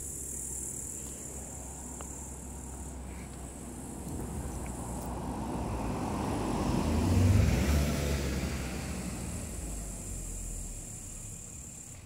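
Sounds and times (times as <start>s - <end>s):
vehicle passing by: 1.5s - 12.0s.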